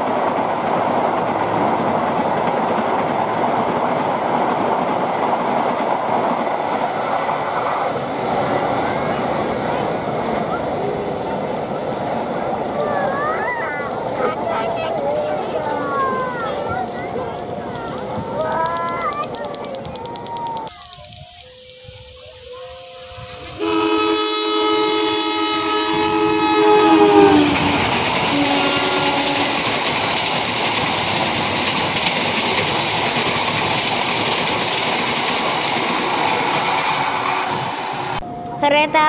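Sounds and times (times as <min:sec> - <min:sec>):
train rumbling and clattering past: 0:00.0 - 0:39.0
diesel locomotive horn: 0:21.7 - 0:29.8, 0:37.2 - 0:37.8.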